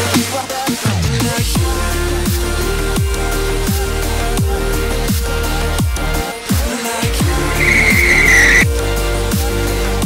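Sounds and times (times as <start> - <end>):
dubstep music with heavy bass: 7.6 - 8.7
tire squeal: 7.6 - 8.7.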